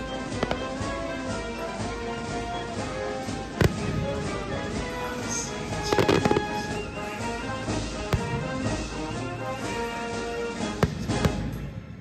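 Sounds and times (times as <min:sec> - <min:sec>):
fireworks bangs: 0:00.0 - 0:12.0
music playing: 0:00.0 - 0:12.0.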